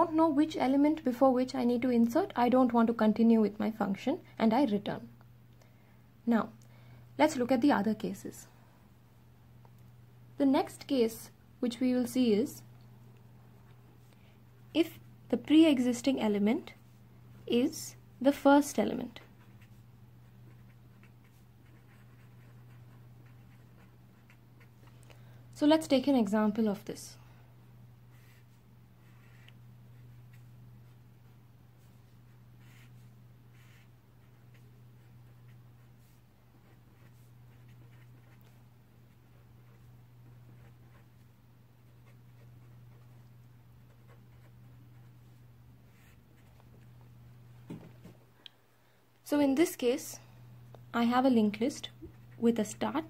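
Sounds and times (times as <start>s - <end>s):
steady low hum: 0.0s - 53.0s
marker pen scratching on paper: 18.3s - 24.9s, 28.1s - 47.1s.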